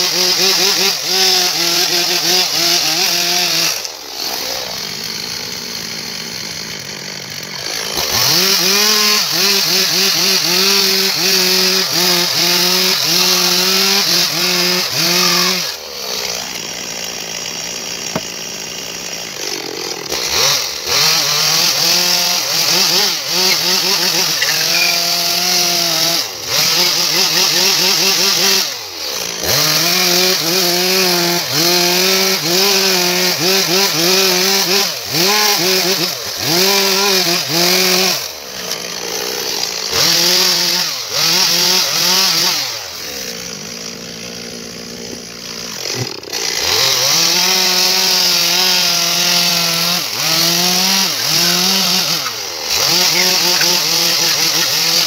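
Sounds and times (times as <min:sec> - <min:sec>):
chainsaw cutting wood: 0:00.0 - 0:55.0.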